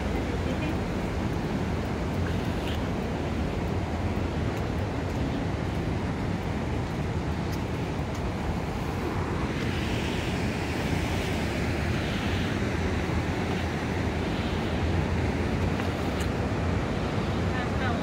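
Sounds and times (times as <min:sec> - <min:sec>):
fast-flowing river rushing: 0:00.0 - 0:18.0.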